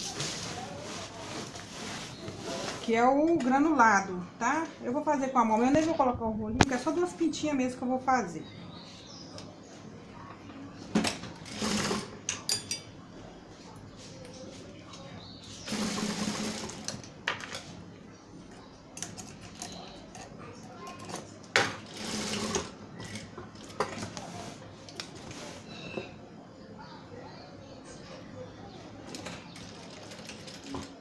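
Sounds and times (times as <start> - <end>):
sewing machine stitching: 11.4 - 12.1, 15.7 - 17.0, 21.8 - 23.3.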